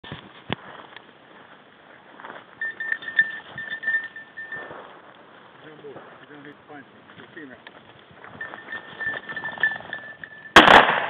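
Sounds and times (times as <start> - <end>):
footsteps through dry grass: 0.0 - 9.8
steady high tone: 2.6 - 4.8.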